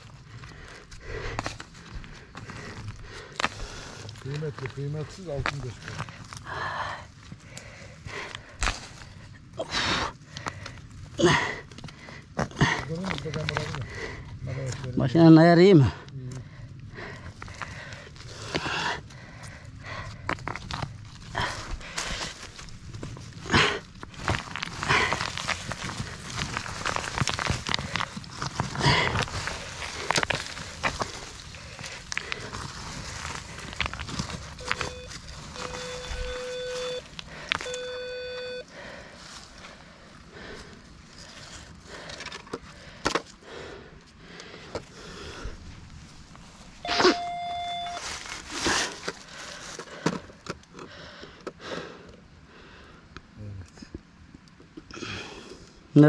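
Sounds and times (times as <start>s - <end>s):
stones clicking and knocking: 0.4s - 6.6s, 11.6s - 14.0s, 19.4s - 35.5s
hands scraping in soil: 20.4s - 37.7s
metal detector tones: 34.6s - 38.7s, 46.8s - 48.0s.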